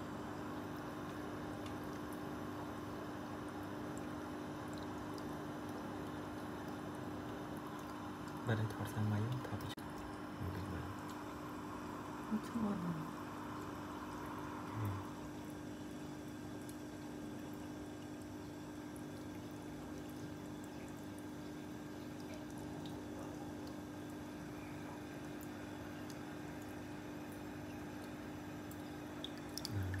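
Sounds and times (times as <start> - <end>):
aquarium water moving: 0.1 - 30.0
faint water drips: 0.7 - 2.4, 3.2 - 30.0
low hum: 5.7 - 17.6.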